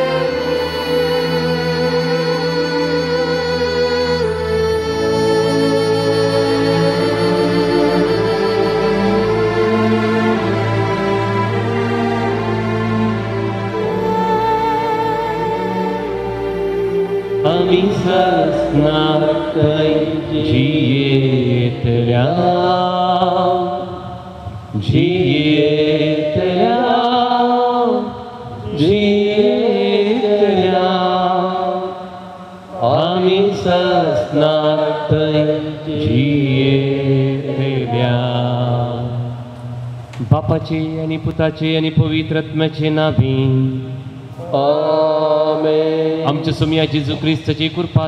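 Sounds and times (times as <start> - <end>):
person singing chant: 0.0 - 48.0.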